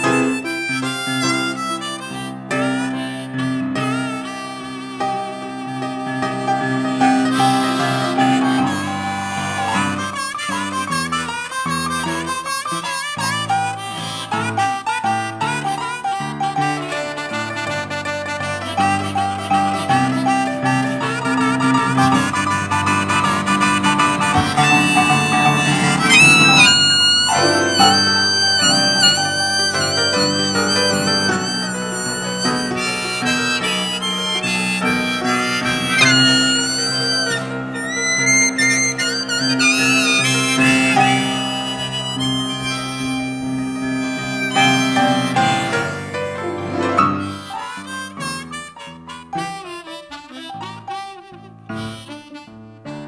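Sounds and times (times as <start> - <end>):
blues piano chords: 0.0 - 53.0
harmonica bending notes: 0.0 - 53.0.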